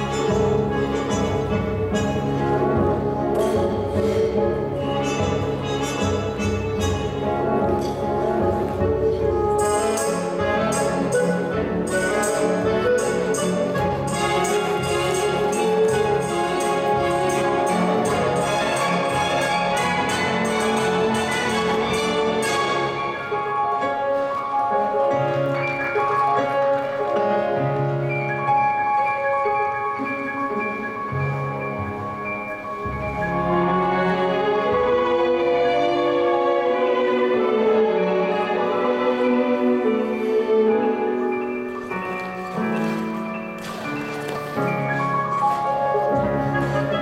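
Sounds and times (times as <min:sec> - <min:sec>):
orchestral music: 0:00.0 - 0:47.0.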